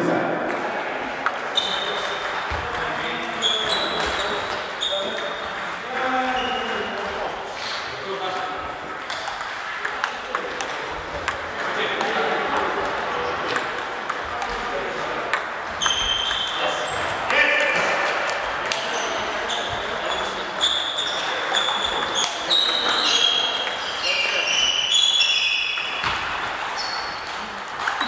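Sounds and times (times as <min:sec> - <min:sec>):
table tennis balls clicking: 0:01.2 - 0:16.6, 0:18.0 - 0:28.0.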